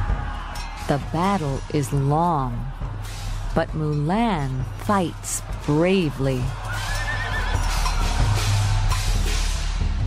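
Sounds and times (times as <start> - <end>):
background music with low bass: 0.0 - 10.0
horse whinny: 6.7 - 7.9.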